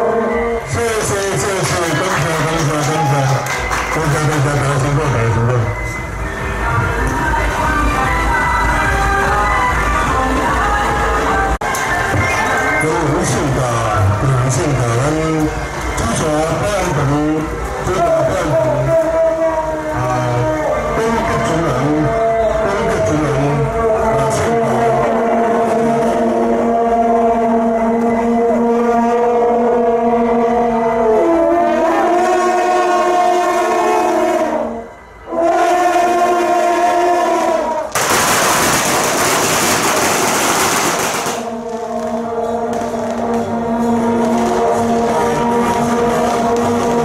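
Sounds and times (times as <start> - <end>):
brass horns holding notes: 0.0 - 47.0
firecrackers crackling: 37.3 - 47.0.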